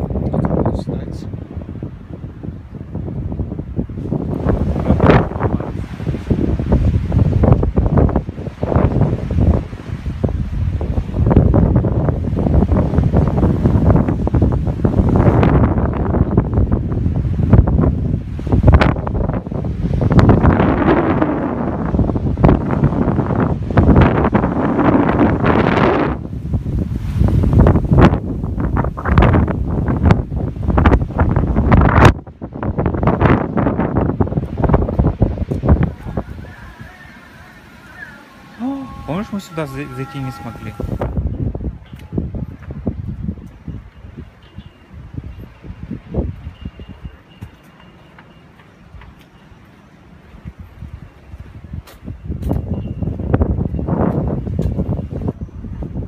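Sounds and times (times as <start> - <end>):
wind pops on microphone: 0.0 - 36.7, 40.8 - 44.3, 51.7 - 56.0
wind buffeting microphone: 0.0 - 49.2, 50.2 - 56.0.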